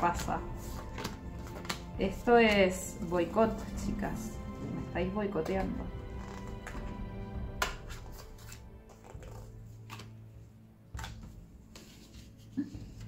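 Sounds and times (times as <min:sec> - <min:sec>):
soft background music: 0:00.0 - 0:13.0
cards clicking and tapping: 0:00.2 - 0:01.9, 0:07.6 - 0:10.1, 0:10.9 - 0:12.0.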